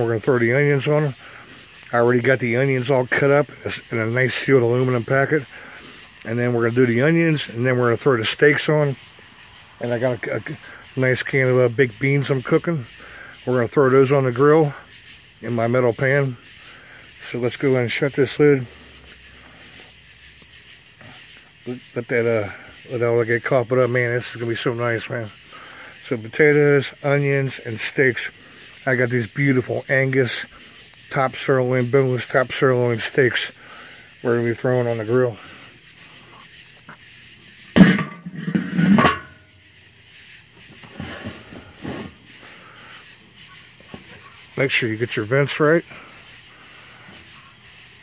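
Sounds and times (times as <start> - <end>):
fire hissing and crackling: 0.0 - 48.0
metal lid rattling: 37.8 - 39.5
metal grill lid clanking: 37.8 - 39.6.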